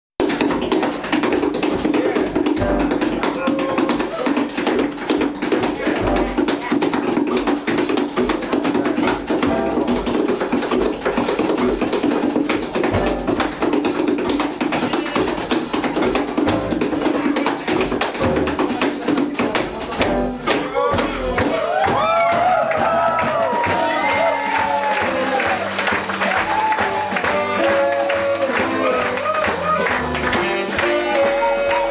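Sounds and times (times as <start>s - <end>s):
jazz combo playing blues: 0.2s - 31.9s
tap shoes striking stage: 0.2s - 31.9s
saxophone melodic phrases: 26.4s - 31.9s.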